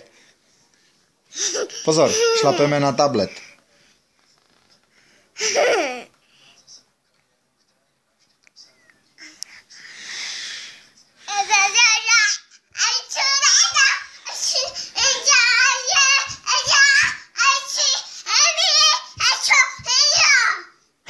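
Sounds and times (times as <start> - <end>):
short breathy hiss: 9.4 - 10.9
toddler girl singing and babbling: 11.3 - 20.8.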